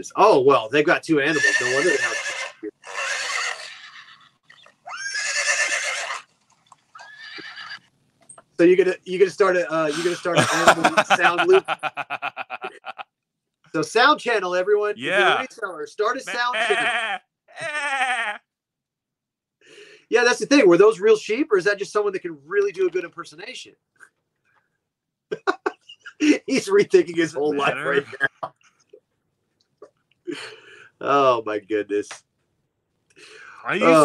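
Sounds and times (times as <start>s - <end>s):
horse whinnying: 1.2s - 6.3s, 6.9s - 7.8s
man imitating sheep bleat: 15.0s - 15.5s, 16.3s - 18.4s, 27.6s - 28.1s, 33.8s - 34.0s.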